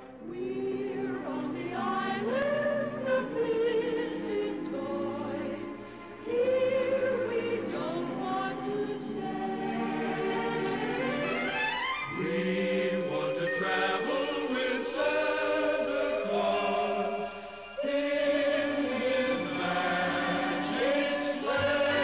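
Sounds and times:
choir holding long chords: 0.0s - 22.0s
orchestral accompaniment: 3.8s - 22.0s.

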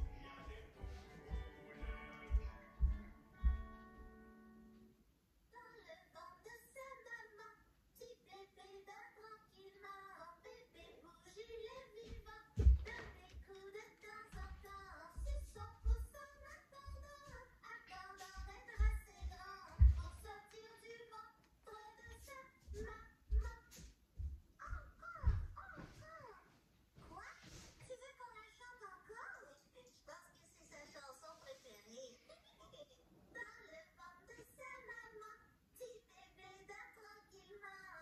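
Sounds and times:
puppet voice singing on television: 0.0s - 3.9s, 5.6s - 23.8s, 24.6s - 26.4s, 27.9s - 38.0s
puppet voice crying through tv speaker: 24.6s - 26.4s.

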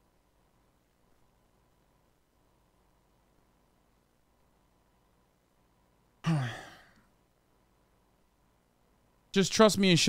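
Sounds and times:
man sighing: 6.2s - 7.1s.

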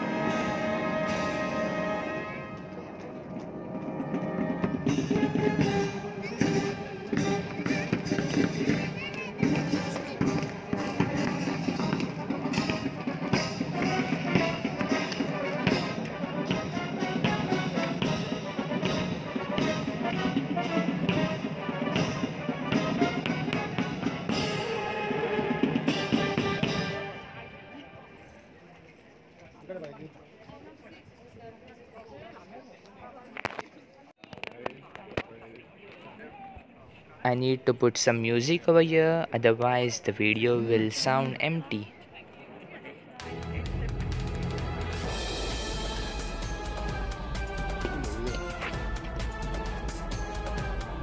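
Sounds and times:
military brass band with drums: 0.0s - 28.4s, 43.2s - 51.0s.

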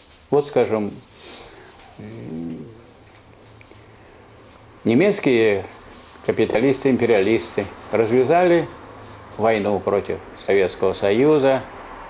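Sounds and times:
man humming hesitation sound: 1.7s - 3.0s.

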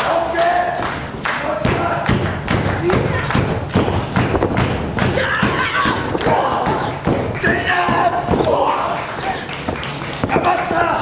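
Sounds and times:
thuds and smacks of wrestling: 1.7s - 8.9s
wrestlers shouting: 5.0s - 9.6s, 10.2s - 11.0s.

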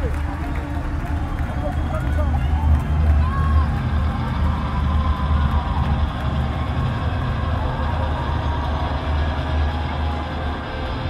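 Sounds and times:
low bass drone: 0.0s - 11.0s.

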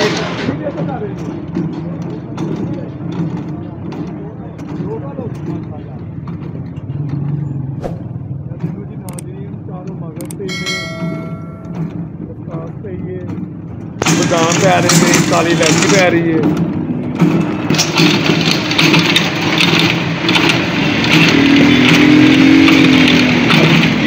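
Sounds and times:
small gasoline engine running: 14.0s - 24.0s
mechanical pestle grinding paste: 14.7s - 24.0s.

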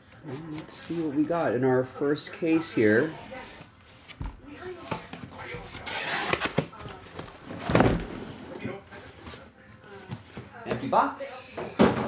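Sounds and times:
cardboard scraping and rustling: 3.1s - 9.5s.

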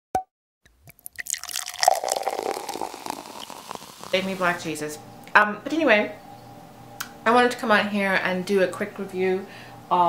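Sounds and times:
water drips and plops: 0.9s - 4.5s.

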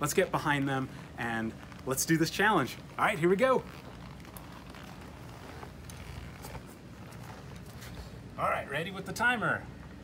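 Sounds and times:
low background noise: 0.0s - 10.0s
gear rustling and clicking: 0.4s - 8.2s.

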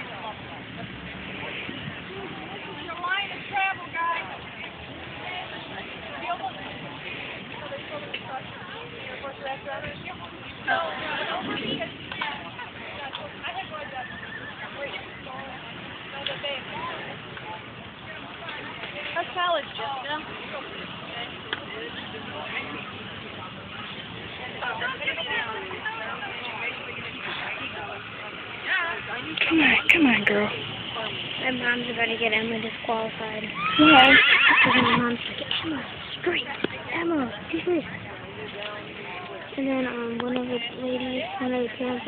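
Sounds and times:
people's voices: 0.0s - 42.0s
horse whinnying: 33.6s - 35.1s.

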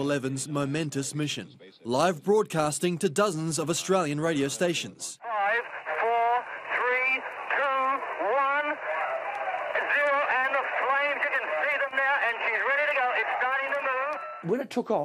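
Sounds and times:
person talking over tinny radio: 5.2s - 14.2s.

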